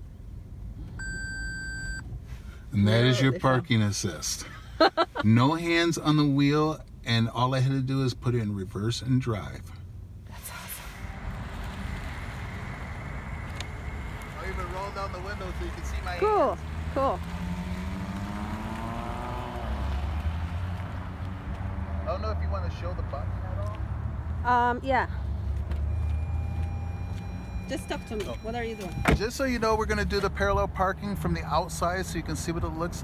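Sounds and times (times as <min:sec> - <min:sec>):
car rumbling: 0:00.0 - 0:33.0
faint electronic tone: 0:01.0 - 0:02.0
vehicle idling: 0:02.2 - 0:23.8.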